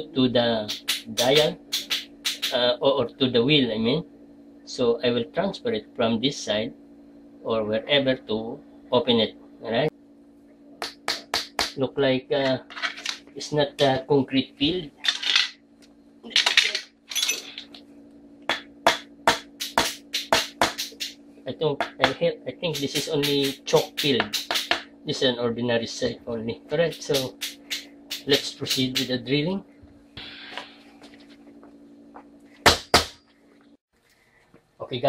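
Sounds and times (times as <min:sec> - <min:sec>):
faint steady hum: 0:00.0 - 0:35.0
sharp knocks: 0:18.5 - 0:21.2, 0:22.8 - 0:24.9, 0:32.6 - 0:33.2.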